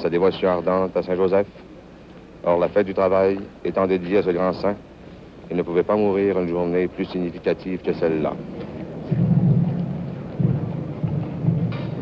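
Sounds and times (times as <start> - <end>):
film soundtrack hiss: 0.0 - 12.0.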